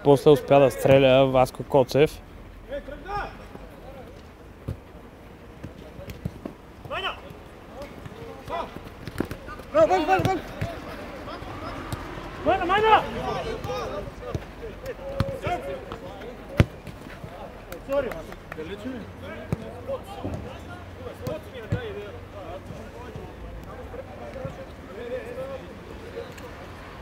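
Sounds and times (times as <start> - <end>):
football players shouting: 6.9 - 18.1.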